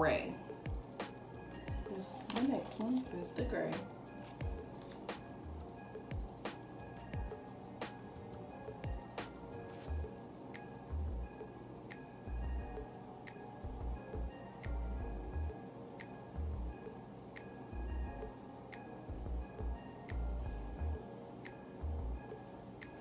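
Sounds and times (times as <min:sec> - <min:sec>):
background music with slow beat: 0:00.0 - 0:23.0.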